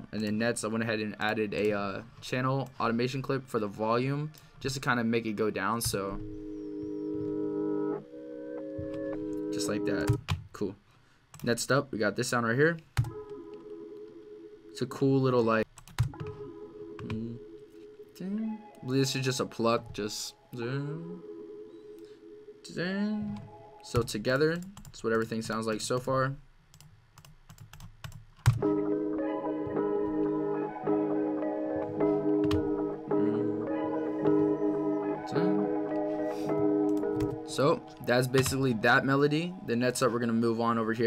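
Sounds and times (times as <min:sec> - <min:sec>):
reversed organ-like chord tones: 0:05.0 - 0:10.0, 0:16.3 - 0:23.9, 0:28.6 - 0:41.0
melodic loop with layered notes: 0:05.0 - 0:10.2, 0:16.0 - 0:24.5, 0:28.6 - 0:41.0.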